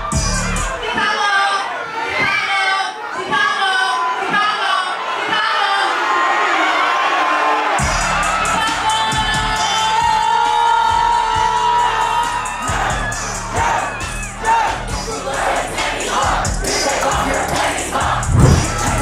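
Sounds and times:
hip-hop track with heavy bass beat: 0:00.0 - 0:00.9, 0:07.8 - 0:19.0
concert crowd cheering: 0:00.0 - 0:19.0
crowd singing along: 0:14.4 - 0:19.0.

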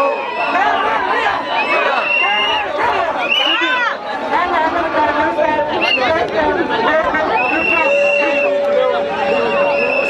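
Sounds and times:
crowd talking and shouting: 0:00.0 - 0:10.0
steady high-pitched tone: 0:07.4 - 0:10.0.

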